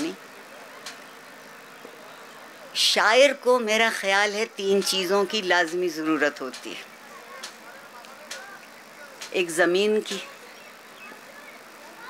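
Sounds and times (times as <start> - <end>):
faint background noise: 0.0 - 12.0
woman speaking: 2.8 - 6.9, 9.3 - 10.4.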